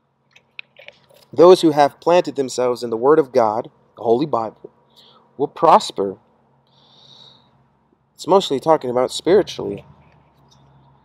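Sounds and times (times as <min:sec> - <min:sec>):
man speaking: 0:01.3 - 0:04.7, 0:05.4 - 0:06.2, 0:08.2 - 0:09.8.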